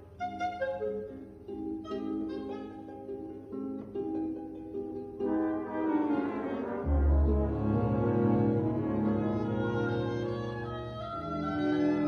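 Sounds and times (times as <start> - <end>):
chamber orchestra sustained chords: 5.2 - 12.0.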